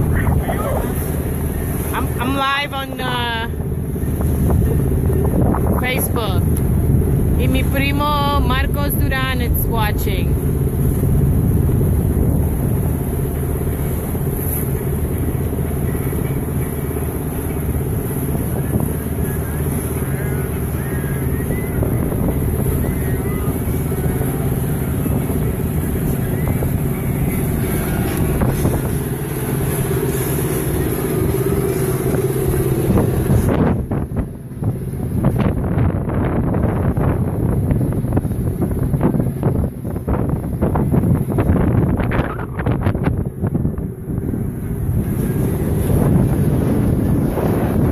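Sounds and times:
boat engine running: 0:00.0 - 0:47.9
wind buffeting microphone: 0:00.0 - 0:47.9.

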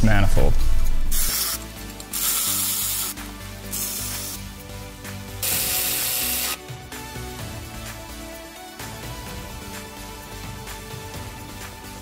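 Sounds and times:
background music: 0:00.0 - 0:12.0
power ratchet running: 0:01.1 - 0:04.4, 0:05.4 - 0:06.6.

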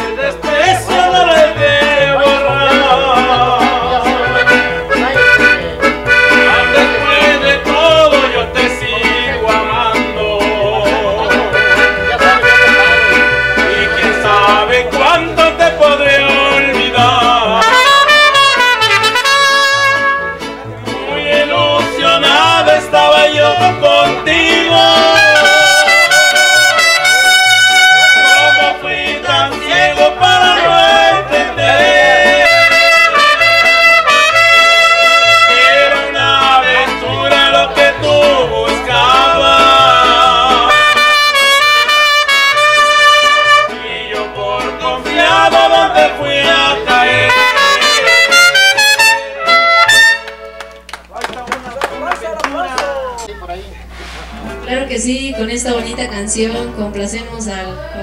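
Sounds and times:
accordion: 0:00.0 - 0:51.1
bass line: 0:00.0 - 0:52.1
strummed guitars: 0:00.0 - 0:56.9
trumpets playing melody: 0:04.2 - 0:07.4, 0:11.6 - 0:14.4, 0:17.5 - 0:20.6, 0:24.8 - 0:36.1, 0:40.6 - 0:43.8, 0:47.0 - 0:50.8.

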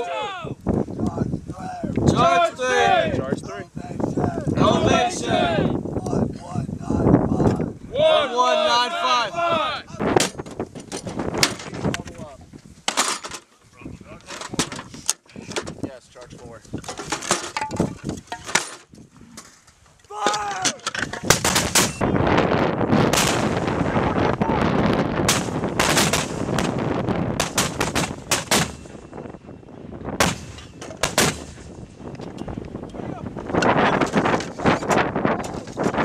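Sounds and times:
mortars firing: 0:21.2 - 0:22.0, 0:23.0 - 0:24.0, 0:25.2 - 0:29.0, 0:30.2 - 0:31.8.

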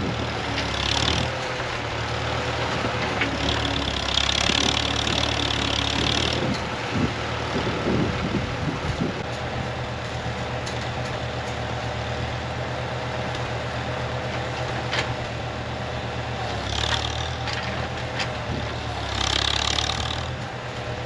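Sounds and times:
tractor engine running: 0:00.0 - 0:21.0.

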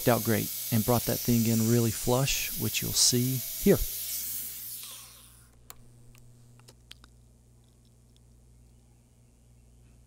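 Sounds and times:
steady low hum: 0:05.1 - 0:10.0.

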